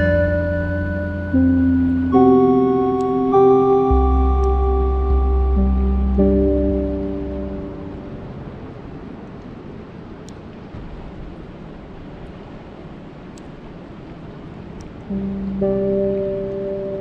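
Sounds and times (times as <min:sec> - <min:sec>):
soft music: 0:00.0 - 0:08.7, 0:15.1 - 0:17.0
rain falling on lake water: 0:09.4 - 0:17.0.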